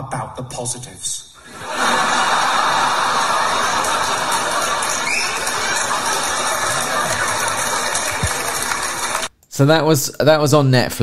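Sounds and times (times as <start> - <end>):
audience laughing: 1.4 - 9.3
audience applauding: 1.6 - 9.3.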